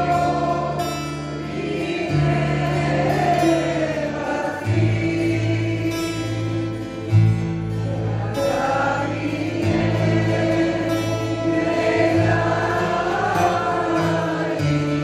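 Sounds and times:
mixed choir singing: 0.0s - 15.0s
folk ensemble playing: 6.2s - 15.0s.

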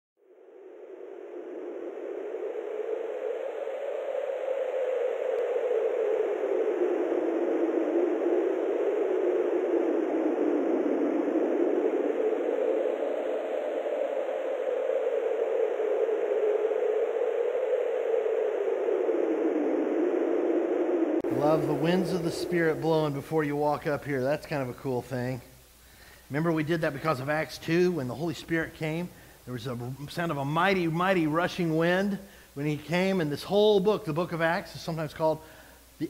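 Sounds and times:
rushing wind gusts: 18.9s - 24.2s.

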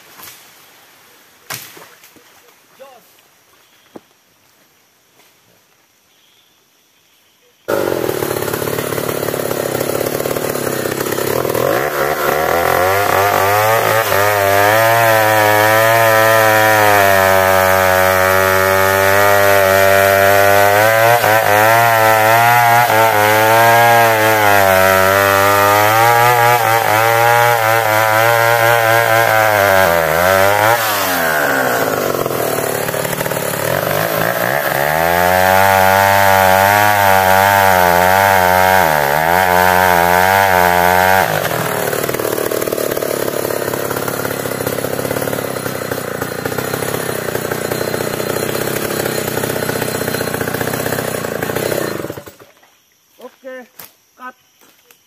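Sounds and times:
chainsaw cutting tree trunk: 7.7s - 52.6s.

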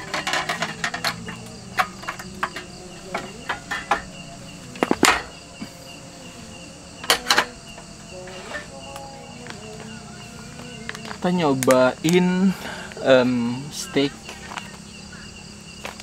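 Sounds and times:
crickets chirping: 0.0s - 16.0s.

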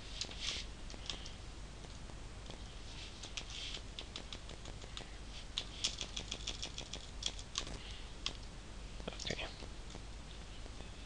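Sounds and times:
keyboard typing: 3.2s - 8.5s.

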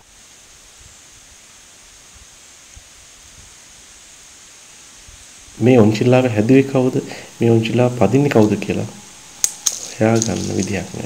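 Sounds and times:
even hiss: 0.0s - 11.0s
thin high-pitched band: 6.3s - 11.0s.

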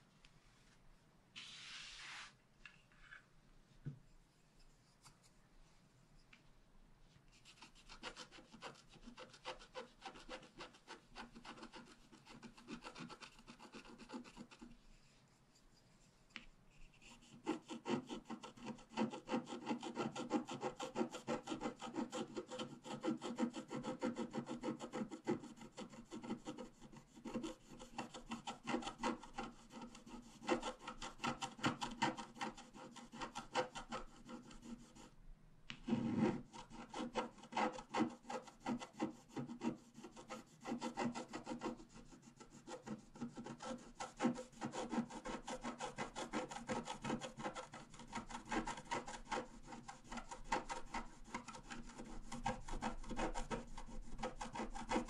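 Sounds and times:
stylus scratching a card: 7.4s - 14.8s, 17.0s - 35.1s, 35.9s - 55.0s.

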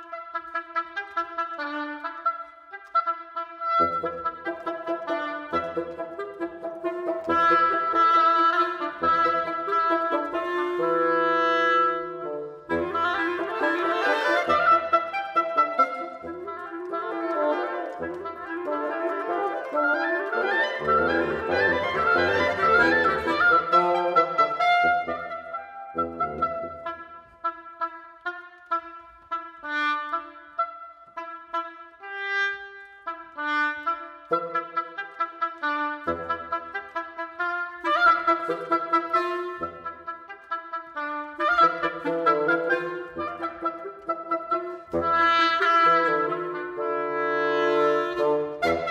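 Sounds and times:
oboe clarinet and bassoon trio: 0.0s - 48.9s.

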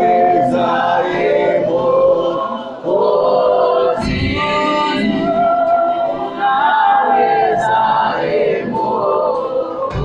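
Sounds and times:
congregation singing: 0.0s - 10.0s.

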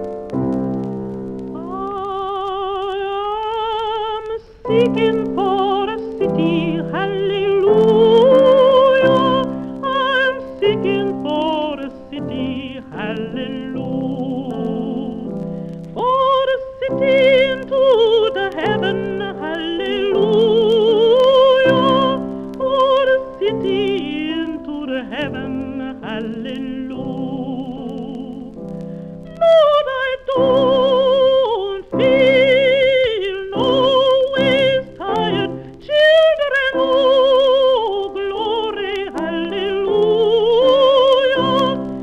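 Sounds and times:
woman singing with vibrato: 1.5s - 28.6s, 29.3s - 42.0s.

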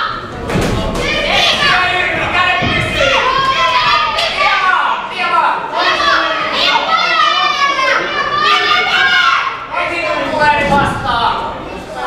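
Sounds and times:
voices shouting: 0.0s - 12.0s.

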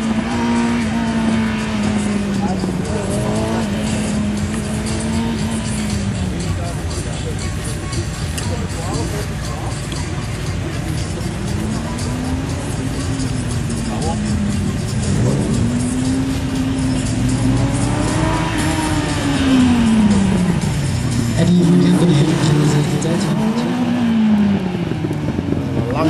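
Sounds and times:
sports car engine revving: 0.0s - 26.0s.

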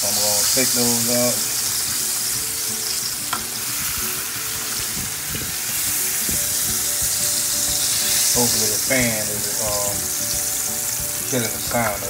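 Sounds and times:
pork chops sizzling in oil: 0.0s - 12.0s.

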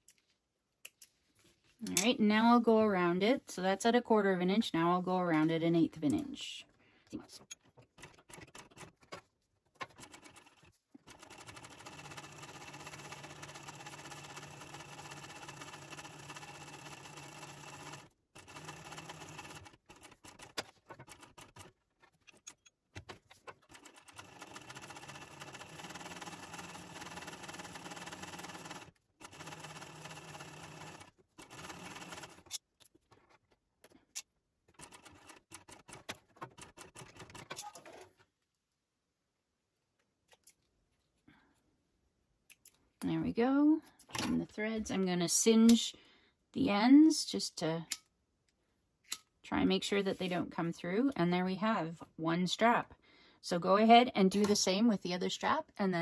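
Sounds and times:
sewing machine stitching: 7.6s - 22.5s, 23.3s - 32.6s, 34.8s - 38.2s.

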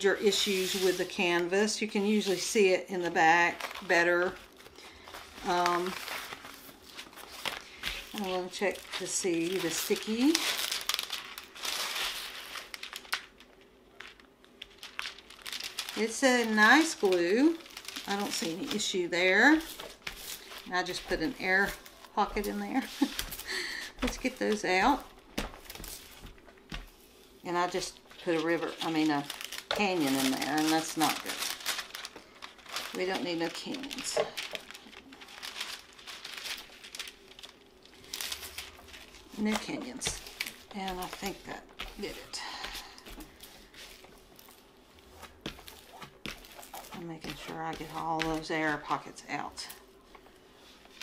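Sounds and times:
plastic film peeling and crinkling: 0.0s - 51.0s.

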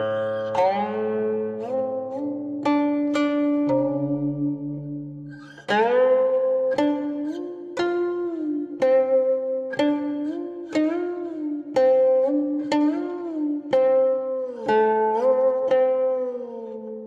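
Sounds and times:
plucked zither melody: 0.0s - 17.0s.

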